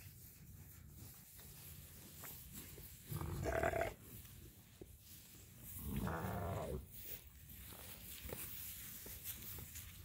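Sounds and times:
sheep bleating: 0:03.1 - 0:04.0, 0:05.9 - 0:06.8.

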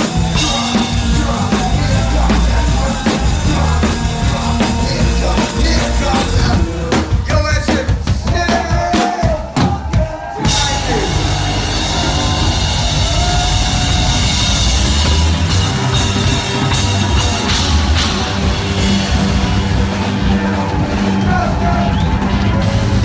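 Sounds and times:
bass guitar: 0:00.0 - 0:23.0
drum kit: 0:00.0 - 0:23.0
live rock band playing: 0:00.0 - 0:23.0.

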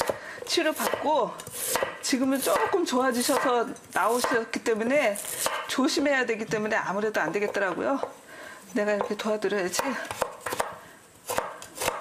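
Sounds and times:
knife chopping on cutting board: 0:00.8 - 0:03.5, 0:09.8 - 0:12.0.

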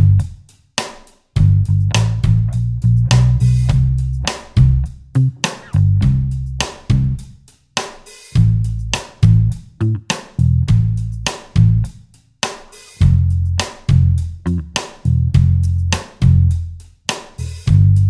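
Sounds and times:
bass guitar: 0:00.0 - 0:00.4, 0:01.4 - 0:07.4, 0:08.4 - 0:12.0, 0:13.0 - 0:18.0
drum kit groove: 0:00.0 - 0:18.0.

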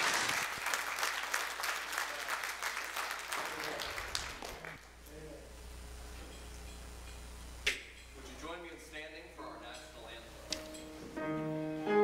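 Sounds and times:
low steady hum: 0:04.8 - 0:10.8.

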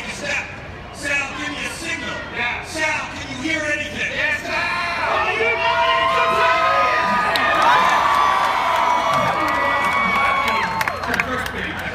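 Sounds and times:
crowd cheering and screaming: 0:05.0 - 0:11.6.

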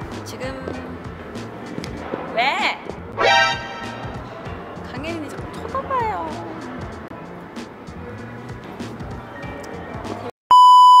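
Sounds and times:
background music with steady beat: 0:00.0 - 0:10.3
test-tone beep: 0:10.5 - 0:11.0.

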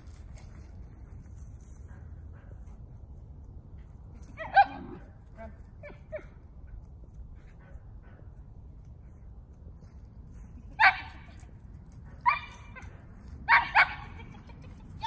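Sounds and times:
dog barking: 0:13.5 - 0:14.2.

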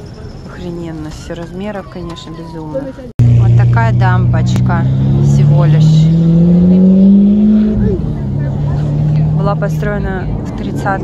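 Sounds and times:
vehicle engine running: 0:03.2 - 0:11.0.

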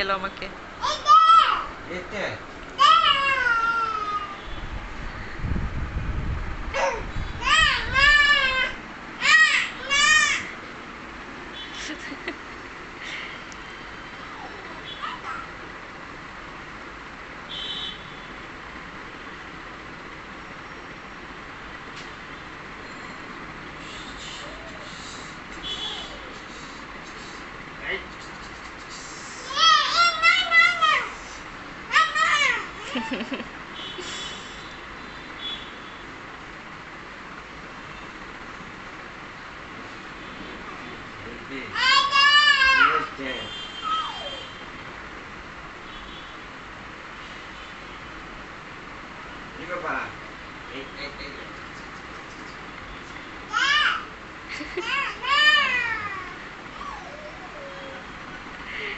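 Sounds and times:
steady background hum: 0:00.0 - 0:58.9
toddler squealing: 0:02.8 - 0:04.4, 0:06.8 - 0:10.5, 0:14.3 - 0:15.5, 0:29.4 - 0:31.1, 0:31.9 - 0:33.1, 0:41.8 - 0:43.2, 0:43.8 - 0:44.4, 0:53.5 - 0:54.1, 0:54.8 - 0:58.1.

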